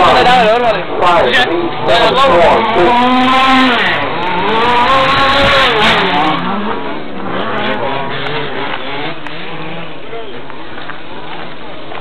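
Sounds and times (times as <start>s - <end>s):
small two-stroke engines running: 0.0s - 12.0s.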